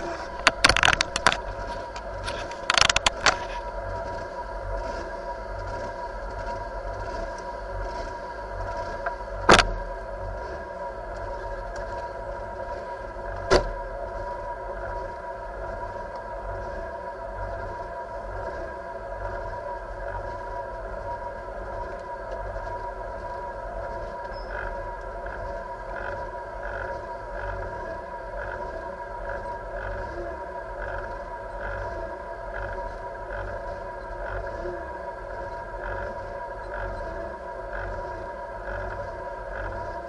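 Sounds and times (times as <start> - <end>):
rally car engine idling: 0.0 - 40.0.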